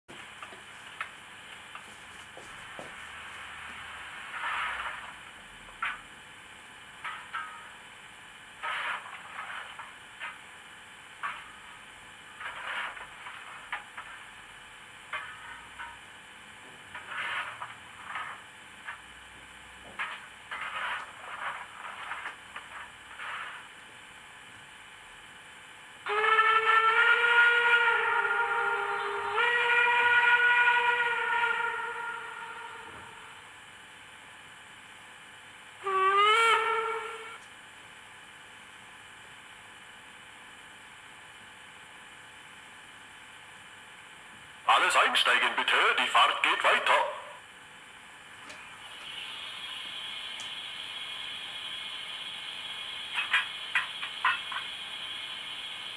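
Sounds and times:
steam whistle: 26.0s - 33.5s, 35.8s - 37.4s
steam hiss bursts: 48.7s - 55.9s.

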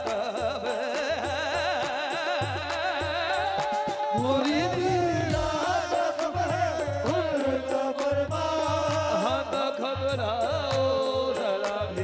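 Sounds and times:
steady drum beat: 0.0s - 12.0s.

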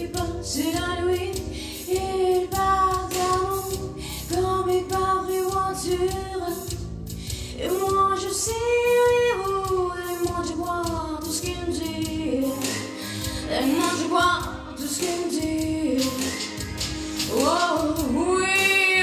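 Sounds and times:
woman singing with vibrato: 0.0s - 6.7s, 7.6s - 16.4s, 17.2s - 19.0s
instrumental accompaniment: 0.0s - 19.0s.

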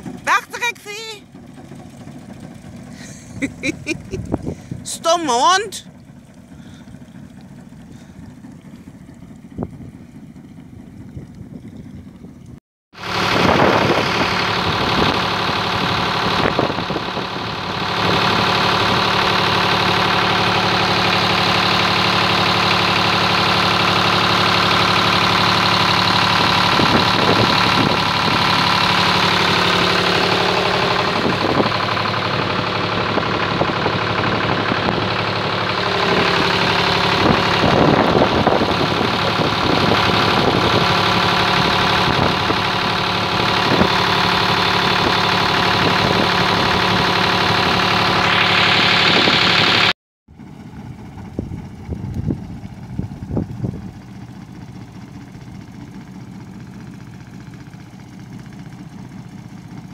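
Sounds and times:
boat engine running: 0.0s - 59.9s
water splashing along hull: 1.2s - 49.9s, 50.6s - 59.9s.

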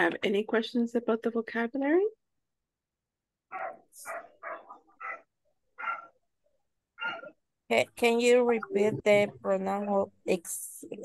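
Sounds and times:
dog barking: 3.5s - 6.2s, 7.0s - 7.4s.

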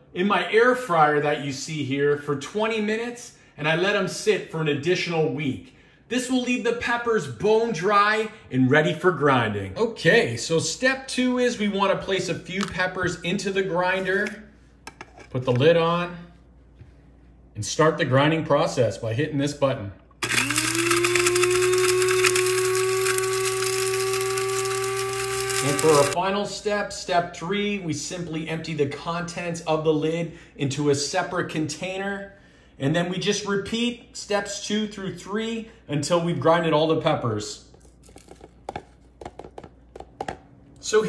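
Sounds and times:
grinder motor whine: 20.2s - 26.2s
lid tapping plastic container: 38.2s - 40.5s.

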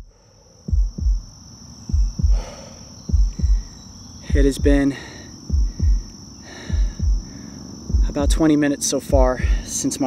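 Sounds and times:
heartbeat thumps: 0.0s - 8.5s, 9.1s - 9.7s
crickets trilling: 0.0s - 10.0s.

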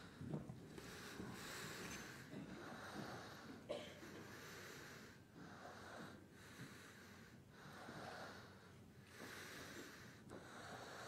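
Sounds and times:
soft breathing close to microphone: 0.0s - 11.0s.

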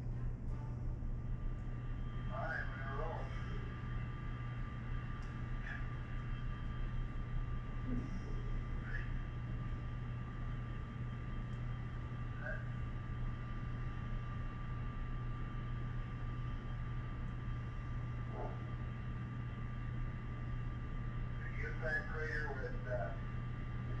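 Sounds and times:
low hum and hiss: 0.0s - 24.0s
constant high tone: 1.4s - 24.0s.

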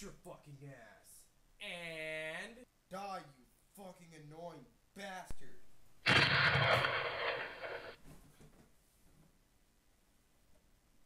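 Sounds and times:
loud burst of rushing noise: 6.1s - 8.0s.

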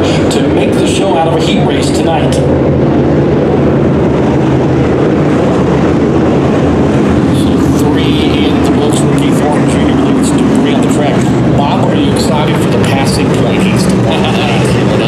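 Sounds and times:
race car engines droning: 0.0s - 15.0s.

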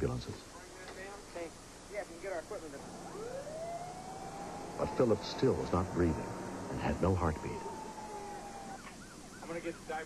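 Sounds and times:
ambulance siren winding up: 2.9s - 9.6s.

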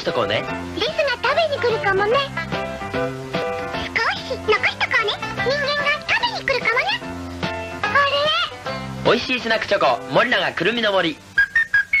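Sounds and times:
high whistle notes: 11.3s - 12.0s.

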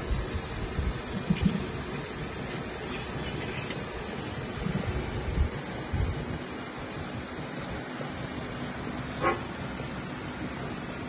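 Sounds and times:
rumbling background noise: 0.0s - 11.0s.

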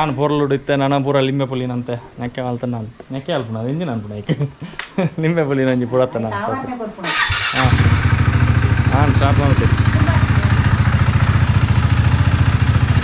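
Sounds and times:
motorcycle engine idling: 7.1s - 13.0s.

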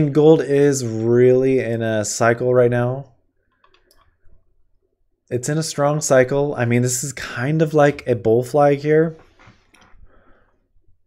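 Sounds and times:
person speaking: 0.0s - 3.2s, 5.3s - 9.7s
computer mouse clicking: 3.5s - 4.2s.

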